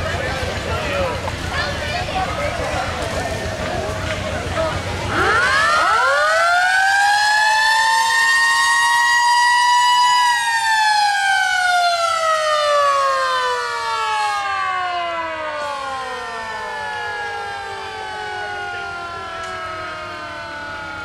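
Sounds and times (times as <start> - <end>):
mechanical siren wailing: 5.0 - 21.0.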